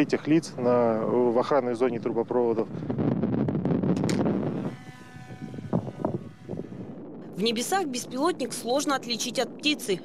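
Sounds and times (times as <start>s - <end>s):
electric motor and propeller whine: 0.0s - 8.4s.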